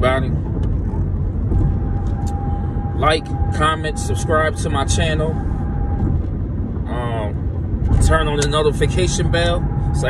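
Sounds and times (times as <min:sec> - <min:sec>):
car interior rumble: 0:00.0 - 0:10.0.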